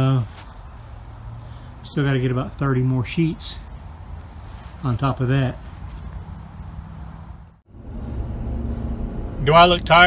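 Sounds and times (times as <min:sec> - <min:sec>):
low outdoor rumble: 0:00.0 - 0:10.0
road rumble inside vehicle: 0:00.0 - 0:10.0.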